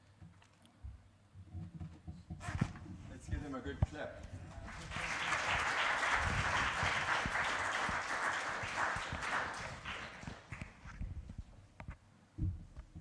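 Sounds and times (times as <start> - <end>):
congregation applauding: 4.6 - 10.9.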